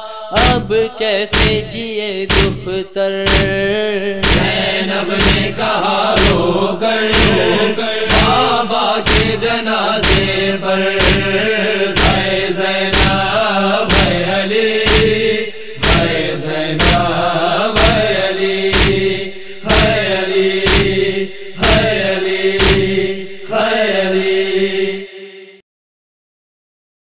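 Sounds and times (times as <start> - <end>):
wordless chanted vocal drone: 0.0 - 25.6
open-hand chest-beating slaps: 0.4 - 3.6, 4.2 - 6.5, 7.1 - 23.1.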